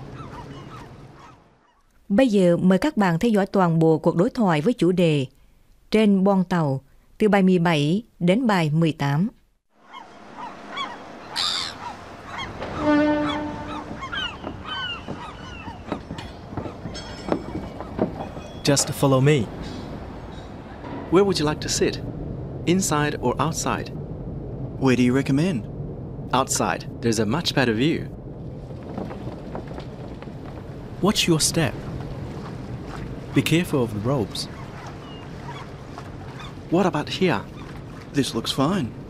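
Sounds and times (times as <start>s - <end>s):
seagulls calling: 0.0s - 1.9s, 9.8s - 20.8s, 32.4s - 38.7s
wind: 0.0s - 39.0s
ferry low rumble: 9.8s - 39.0s
footsteps on deck: 12.5s - 18.5s, 28.6s - 31.0s
steady horn note: 12.6s - 14.0s.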